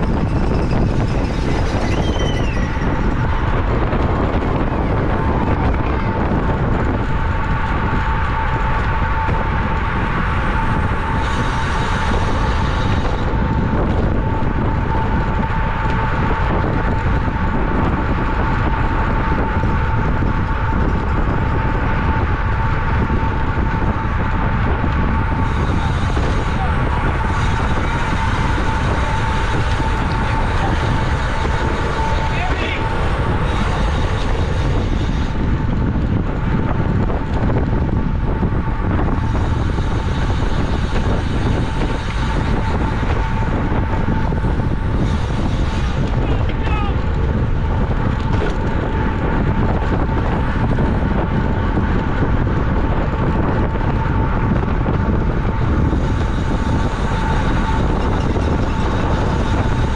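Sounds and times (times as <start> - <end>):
steady high-pitched hum: 0.0 - 59.9
wind rushing over microphone: 0.0 - 59.9.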